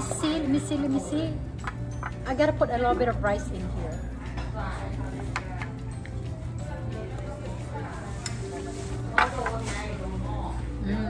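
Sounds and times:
murmur of voices: 0.0 - 11.0
soft background music: 0.0 - 11.0
spoon clinking against dishes: 1.6 - 2.4.

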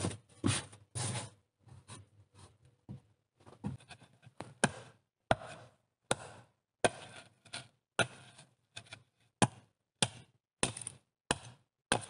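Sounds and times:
foam mat scraping and rustling: 0.0 - 1.4.

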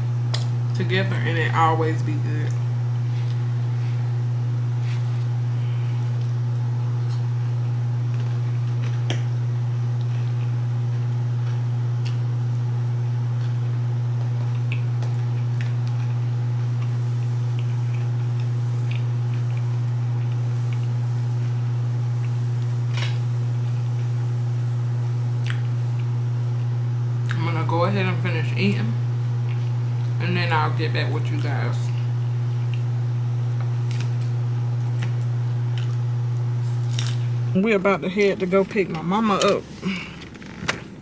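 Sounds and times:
low electrical motor hum: 0.0 - 41.0.

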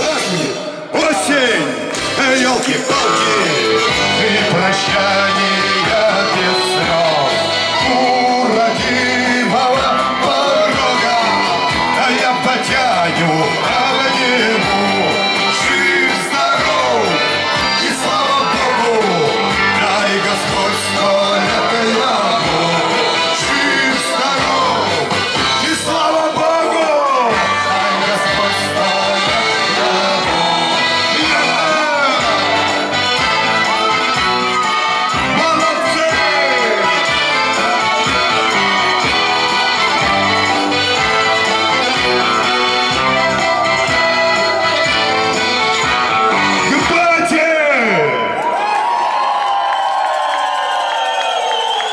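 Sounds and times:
live instrumental folk music: 0.0 - 48.0
man singing: 0.0 - 48.2.

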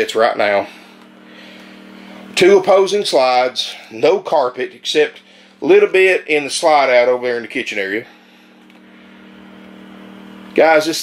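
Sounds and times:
faint mechanical hum: 0.0 - 11.0.

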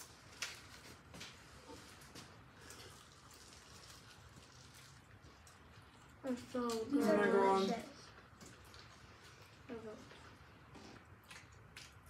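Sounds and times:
mouth clicks and chewing: 8.1 - 12.0.

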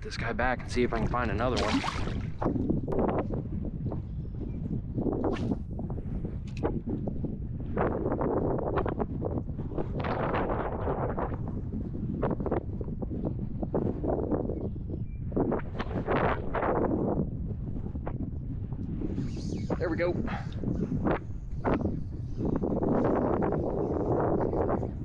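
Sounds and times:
wind buffeting microphone: 0.0 - 25.0.

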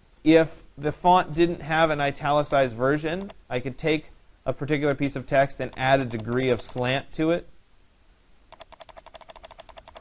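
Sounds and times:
rapid computer clicking: 2.4 - 3.4, 5.6 - 7.0, 8.5 - 10.0.

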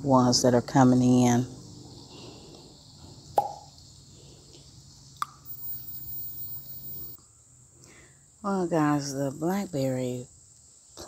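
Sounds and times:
insect chorus: 0.0 - 11.0.

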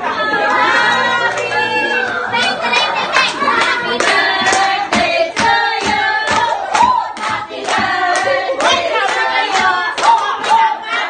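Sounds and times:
rhythmic hand clapping: 0.0 - 11.0
women singing: 0.0 - 11.0.

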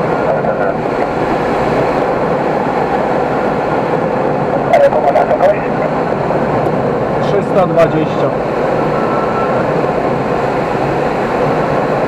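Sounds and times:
air rushing over glider canopy: 0.0 - 12.0.

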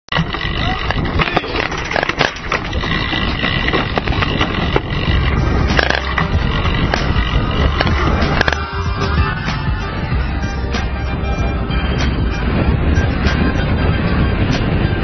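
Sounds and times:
tyres rolling over dirt: 0.1 - 9.8
bike rattling: 0.1 - 15.0
low rumble: 0.2 - 15.0.

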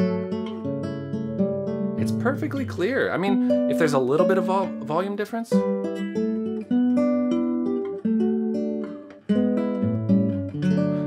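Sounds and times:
classical guitar plucked: 0.0 - 11.0.

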